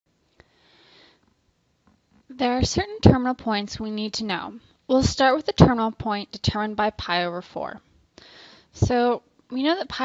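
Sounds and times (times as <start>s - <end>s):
faint breath hiss: 0.1s - 3.1s, 7.8s - 9.8s.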